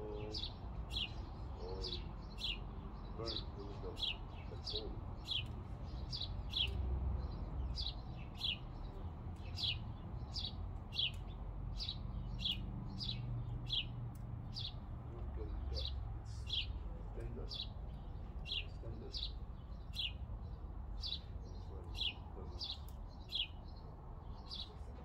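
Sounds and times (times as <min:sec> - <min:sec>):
bird chirping: 0:00.0 - 0:25.0.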